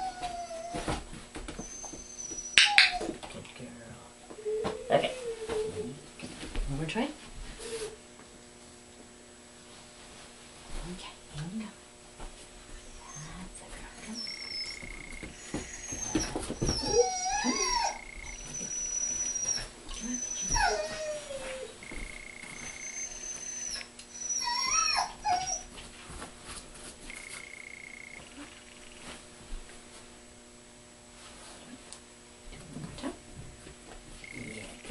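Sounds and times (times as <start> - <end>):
dog whining: 0.0 - 3.2, 4.3 - 6.0, 7.6 - 8.0, 12.8 - 25.8, 34.2 - 34.9.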